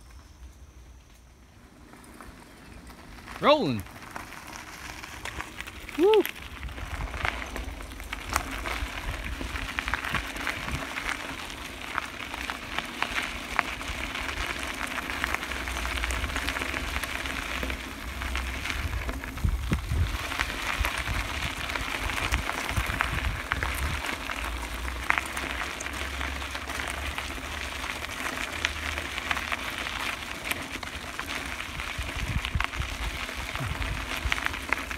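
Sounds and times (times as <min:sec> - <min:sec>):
bicycle tyres on gravel: 0:00.0 - 0:34.9.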